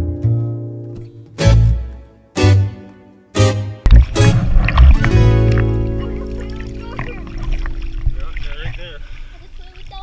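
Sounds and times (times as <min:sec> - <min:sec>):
water sloshing and splashing: 0:03.9 - 0:10.0.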